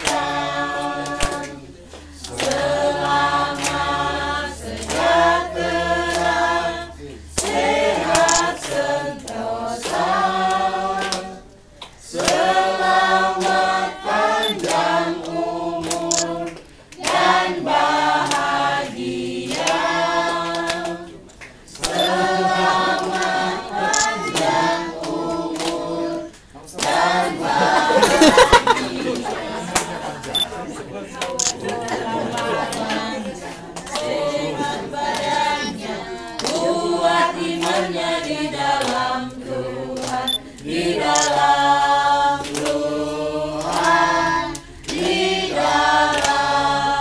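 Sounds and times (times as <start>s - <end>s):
group singing unaccompanied: 0.0s - 47.0s.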